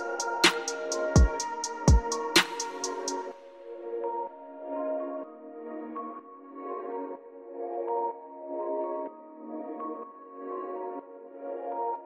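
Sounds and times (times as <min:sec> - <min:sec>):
ambient synth music: 0:00.0 - 0:12.0.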